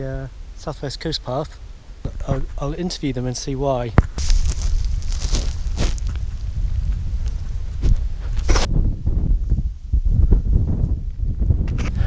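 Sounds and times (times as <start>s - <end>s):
wind buffeting microphone: 0.0s - 12.0s
scrapes and rustles: 4.2s - 8.7s.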